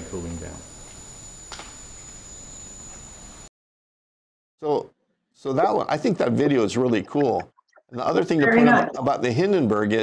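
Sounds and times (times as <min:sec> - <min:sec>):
sharp click: 0:01.5 - 0:01.8.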